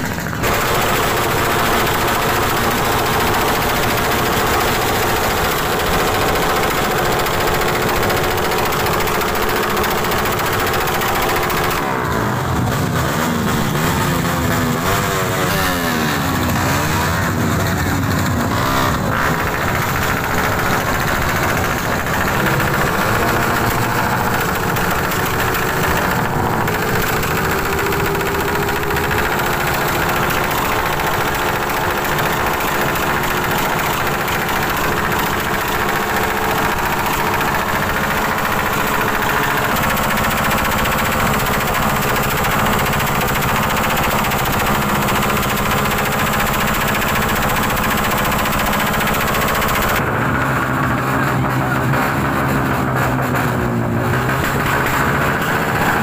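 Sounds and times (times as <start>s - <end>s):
motorcycle engine idling: 0.0s - 12.8s, 13.8s - 56.0s.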